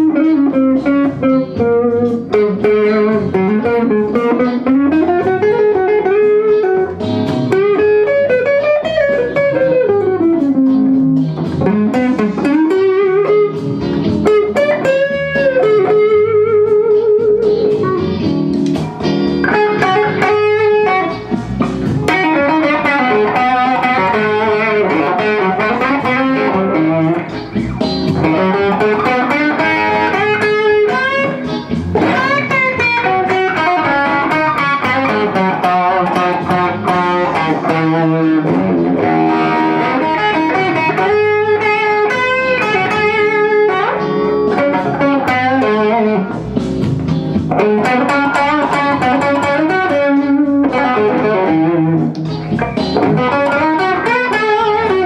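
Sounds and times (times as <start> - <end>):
overdriven electric guitar lead: 0.0 - 55.0.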